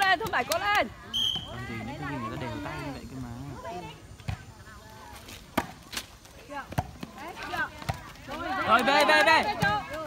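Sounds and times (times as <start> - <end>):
volleyball hand slaps: 0.0 - 0.7
voices of players and spectators: 0.0 - 10.0.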